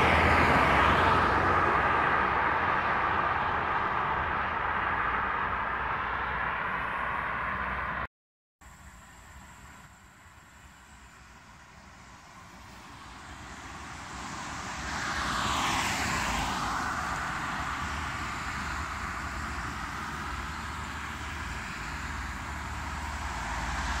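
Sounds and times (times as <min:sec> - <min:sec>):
vehicle passing close by: 0:00.0 - 0:08.1, 0:11.6 - 0:24.0
steady traffic noise: 0:00.0 - 0:24.0.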